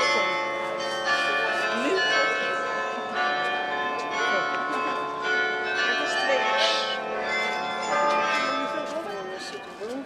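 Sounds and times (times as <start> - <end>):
carillon bells ringing: 0.0 - 10.0.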